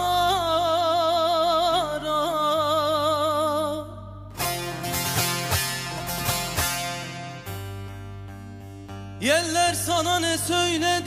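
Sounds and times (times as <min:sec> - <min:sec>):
long-necked lute strummed and plucked: 0:00.0 - 0:11.0.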